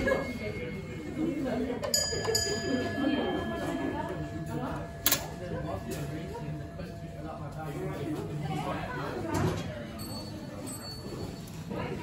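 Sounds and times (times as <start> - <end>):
block bell ringing: 0.0 - 7.8
murmur of voices: 0.0 - 12.0.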